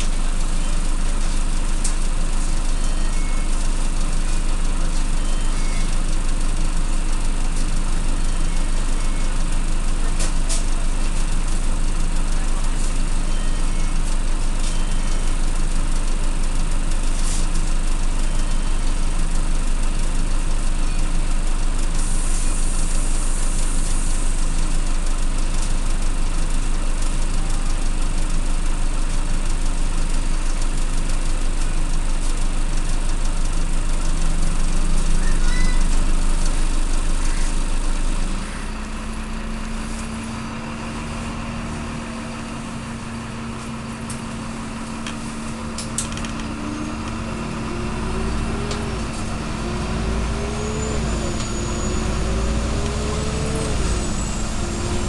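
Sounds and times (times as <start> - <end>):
bus diesel engine idling: 0.0 - 55.0.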